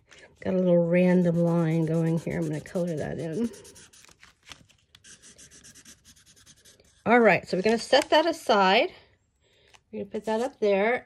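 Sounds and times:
marker scribbling on paper: 1.0s - 4.1s, 5.0s - 7.2s.

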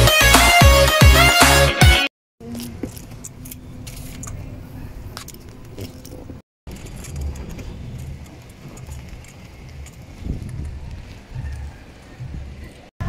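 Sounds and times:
ride cart rumbling and rattling: 2.4s - 12.9s.

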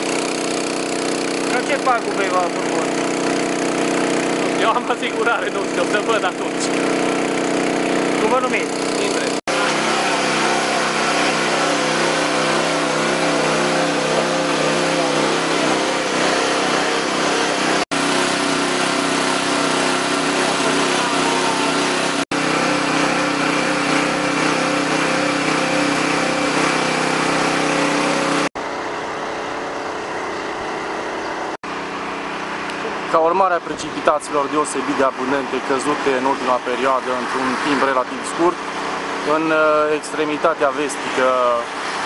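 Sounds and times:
engine running steadily: 0.0s - 42.0s.

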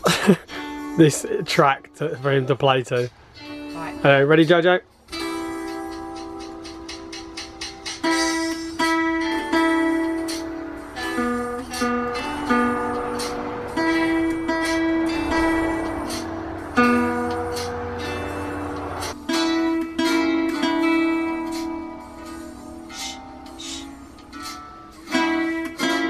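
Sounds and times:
classical guitar plucked melody: 8.0s - 26.0s.

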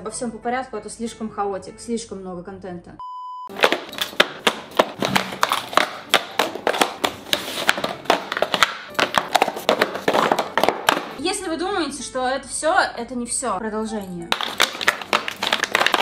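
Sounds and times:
test-tone beep: 3.0s - 3.6s
cardboard boxes clattering: 3.5s - 11.0s.

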